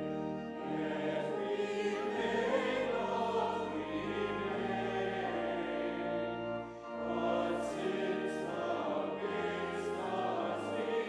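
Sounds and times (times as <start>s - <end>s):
church organ chords: 0.0s - 11.0s
voices singing: 0.0s - 11.0s.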